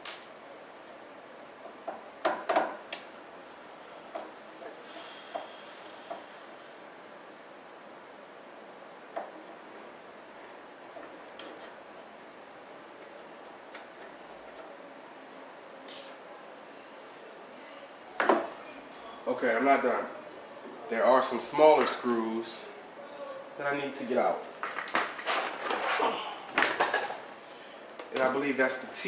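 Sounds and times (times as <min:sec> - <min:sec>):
steady hiss: 0:02.9 - 0:14.0.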